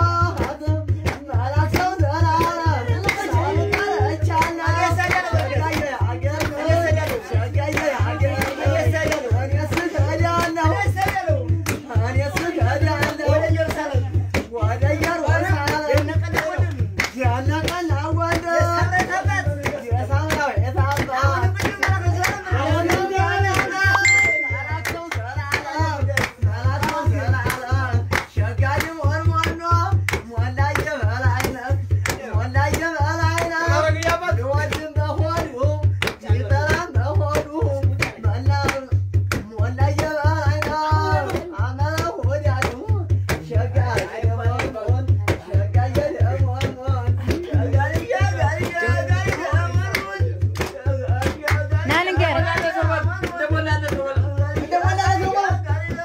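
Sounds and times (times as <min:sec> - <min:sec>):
voices singing: 0:00.0 - 0:38.8, 0:39.8 - 0:56.0
hand claps: 0:00.0 - 0:56.0.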